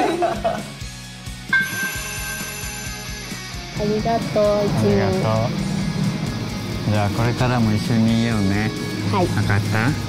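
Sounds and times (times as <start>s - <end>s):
soft background music: 0.0s - 10.0s
bell-like chime: 1.5s - 4.3s.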